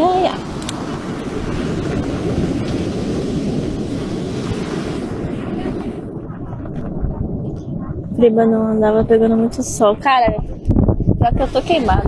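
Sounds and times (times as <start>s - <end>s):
breaking surf: 0.0s - 12.0s
wind buffeting microphone: 0.0s - 12.0s.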